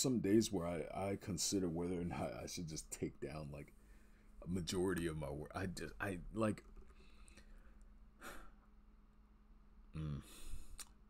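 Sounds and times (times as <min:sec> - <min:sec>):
faint low hum: 0:00.0 - 0:11.0
man sighing: 0:09.9 - 0:10.9.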